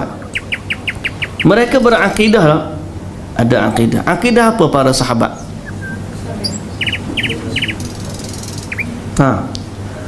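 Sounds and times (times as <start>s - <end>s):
steady low hum: 0.0s - 10.0s
small bird chirping: 0.3s - 2.4s, 5.4s - 9.1s
thin high whistles: 5.6s - 9.0s.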